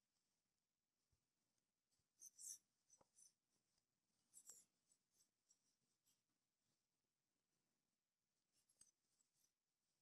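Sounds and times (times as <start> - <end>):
yarn rustling on crochet hook: 8.3 - 10.0.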